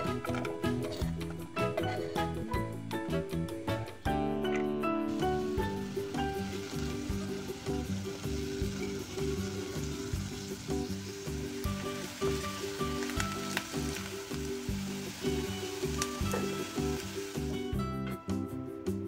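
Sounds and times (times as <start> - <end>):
background music with steady beat: 0.0 - 19.0
onion sizzling in hot oil: 5.1 - 18.1.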